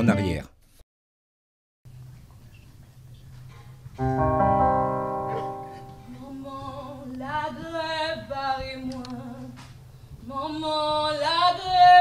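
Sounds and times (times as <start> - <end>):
keyboard chord: 4.0 - 6.5.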